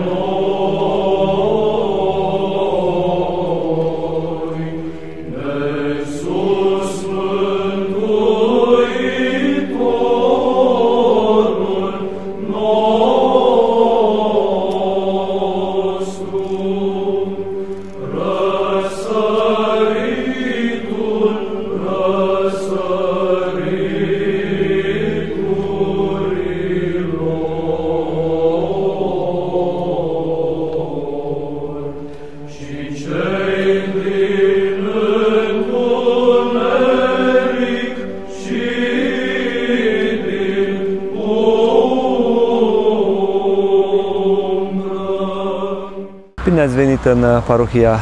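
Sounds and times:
voices chanting slow melody: 0:00.0 - 0:47.9
held vocal drone: 0:00.0 - 0:48.0.

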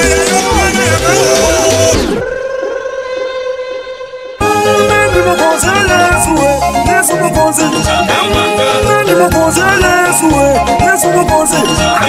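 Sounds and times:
rhumba dance music: 0:00.0 - 0:02.3, 0:04.4 - 0:12.0.

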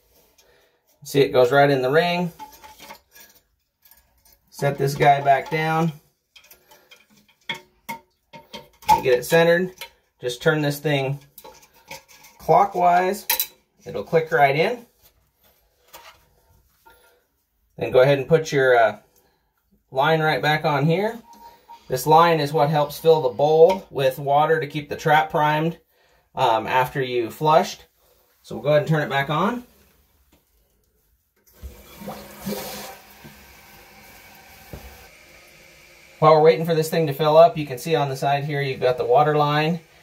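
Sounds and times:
water hissing into toilet tank: 0:31.5 - 0:40.0.

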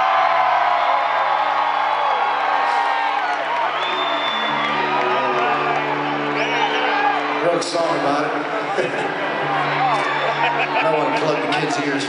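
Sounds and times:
crowd cheering and whooping: 0:00.0 - 0:12.0
live band sustained low chords: 0:04.5 - 0:12.0.

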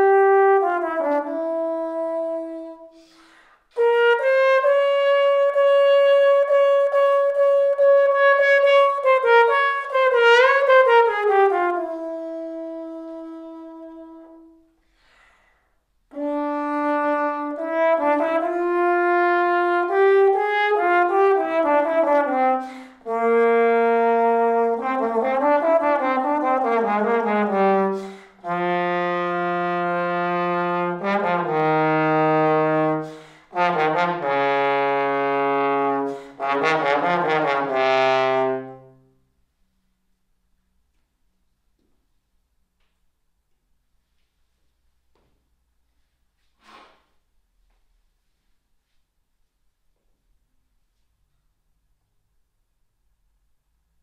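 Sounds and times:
solo trombone playing: 0:00.0 - 0:03.1, 0:03.7 - 0:14.8, 0:16.1 - 0:39.3.

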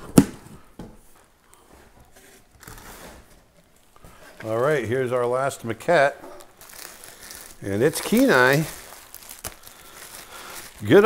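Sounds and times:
packing paper rustling: 0:06.2 - 0:11.0.

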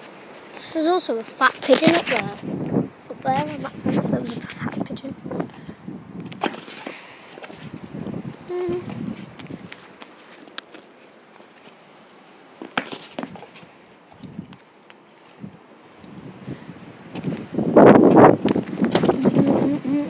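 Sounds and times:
dog paws clicking on stone: 0:01.4 - 0:02.4, 0:03.3 - 0:04.8, 0:06.2 - 0:16.2.

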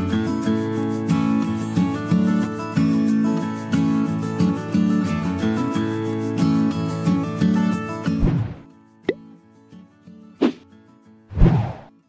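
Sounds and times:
short pop: 0:08.2 - 0:08.6, 0:10.4 - 0:10.6.

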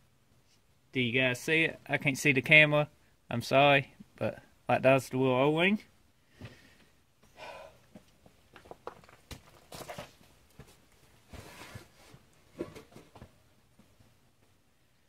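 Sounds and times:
soft breaths: 0:06.1 - 0:08.1
soft rustles: 0:08.0 - 0:14.6.

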